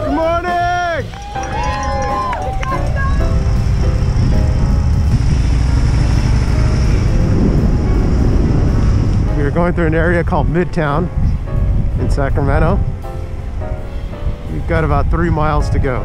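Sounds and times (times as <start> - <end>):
voices: 0.0 - 3.7
road noise: 0.0 - 16.0
wind buffeting microphone: 1.0 - 16.0.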